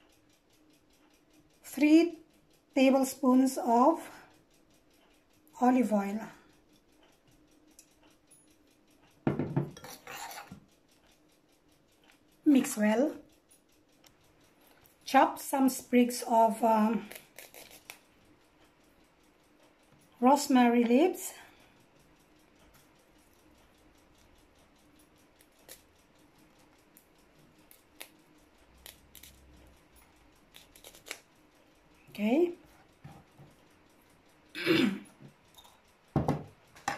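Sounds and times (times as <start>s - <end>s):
metal spoon clinking on bowl: 9.3s - 10.6s, 35.5s - 35.8s
spoon scraping in mixture: 9.8s - 10.6s.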